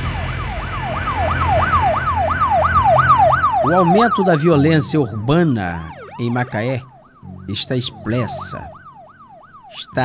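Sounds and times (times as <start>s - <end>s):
electronic siren yelping: 0.0s - 10.0s
low steady hum: 0.0s - 10.0s.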